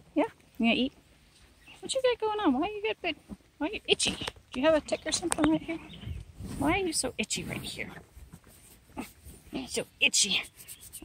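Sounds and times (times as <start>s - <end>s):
fingers scratching horse's coat: 6.4s - 11.0s.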